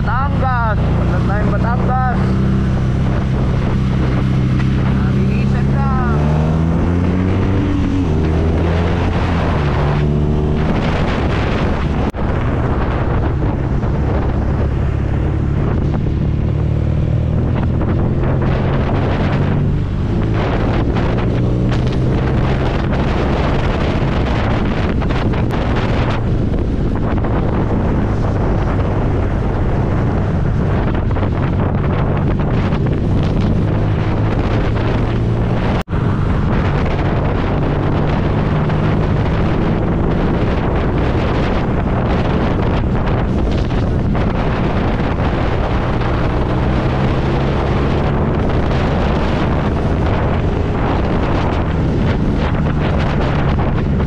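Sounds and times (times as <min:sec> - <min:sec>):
motorcycle engine cruising: 0:00.0 - 0:54.0
wind buffeting microphone: 0:00.0 - 0:54.0.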